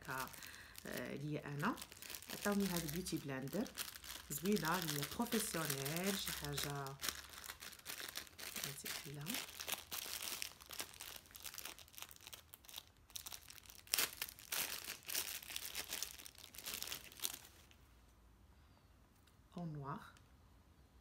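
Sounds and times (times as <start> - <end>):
plastic packaging crinkling and tearing: 0.0 - 17.8.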